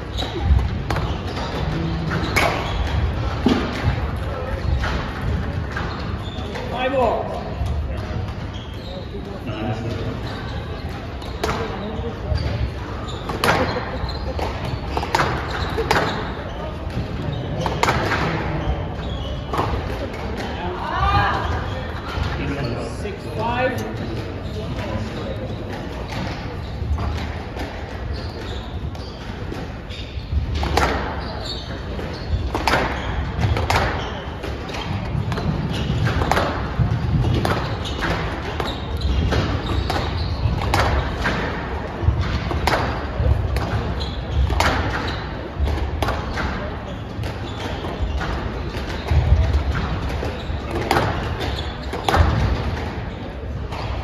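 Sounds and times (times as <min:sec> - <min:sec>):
squash ball smacking racquets and walls: 0:00.0 - 0:09.3, 0:09.9 - 0:22.6, 0:23.8 - 0:54.0
murmur of spectators: 0:00.0 - 0:54.0
squash ball smack: 0:34.8 - 0:46.5, 0:49.0 - 0:52.8.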